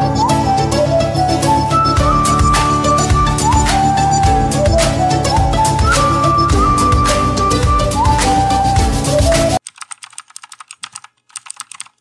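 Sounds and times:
flute-like background music: 0.0 - 9.6
computer keyboard typing: 9.2 - 12.0.

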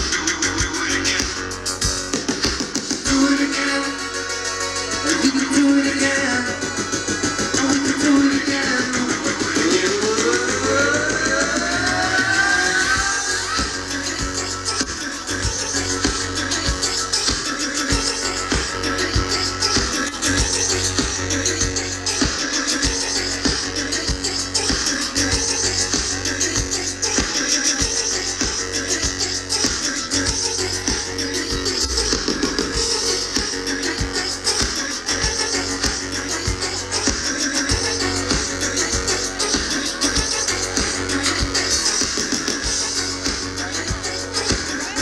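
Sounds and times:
steady kick drum beat: 0.0 - 3.5, 5.0 - 45.0
electronic dance band playing: 0.0 - 45.0
synthesizers and keyboards: 0.0 - 45.0.

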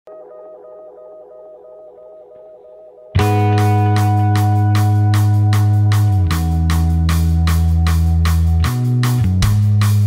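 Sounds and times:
pulsing electronic tone: 0.1 - 4.3.

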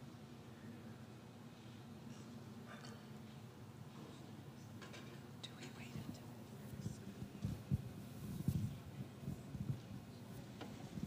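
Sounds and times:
low room hum: 0.0 - 11.0
faint whispered talk: 5.4 - 7.9.

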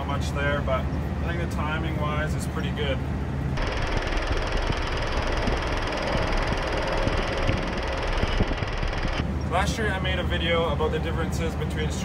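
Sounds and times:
sprayer engine running: 3.6 - 9.2
irregular low thumps: 3.6 - 9.3.

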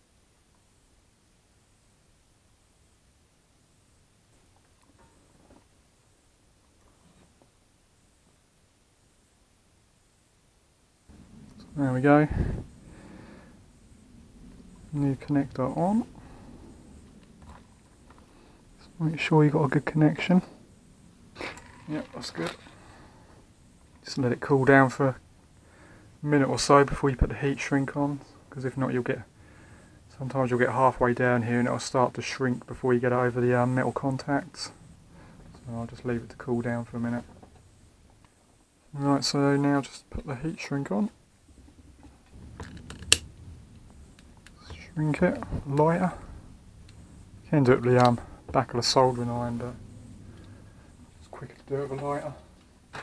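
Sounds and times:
light handling ticks and rustles: 14.4 - 20.6, 21.4 - 25.0.

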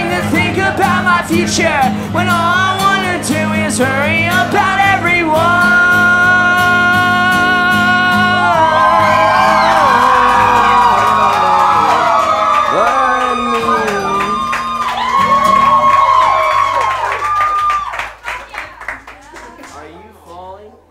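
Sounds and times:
acoustic guitar chord ringing: 0.0 - 16.8
audience cheering and whooping: 8.1 - 18.4
clapping: 9.1 - 19.9.

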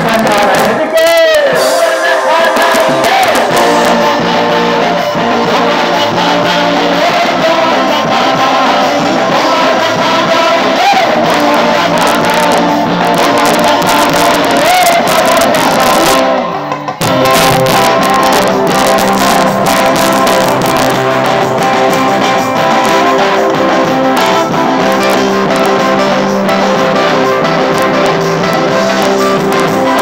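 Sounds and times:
guitar: 0.0 - 30.0
person singing: 0.0 - 30.0.

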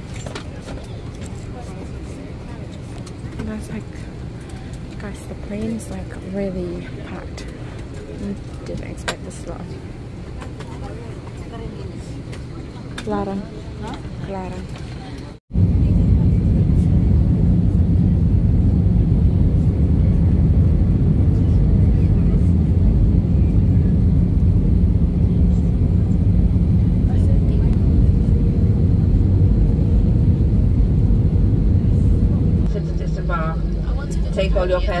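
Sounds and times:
airliner engine rumble in cabin: 0.0 - 35.0.

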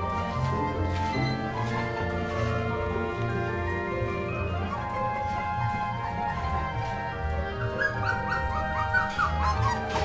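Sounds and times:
puppy whining: 7.2 - 10.0.

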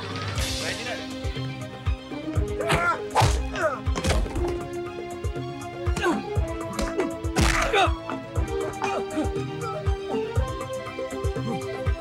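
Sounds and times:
action music: 0.0 - 12.0
punches and whacks landing: 2.7 - 4.5, 5.9 - 7.8.

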